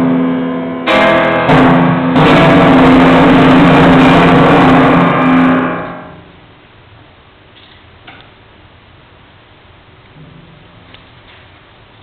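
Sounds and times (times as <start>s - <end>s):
timpani and piano chord: 0.0s - 6.4s.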